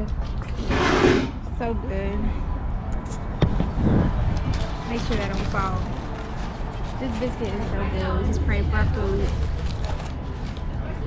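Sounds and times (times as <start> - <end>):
steady low rumble: 1.4 - 11.0.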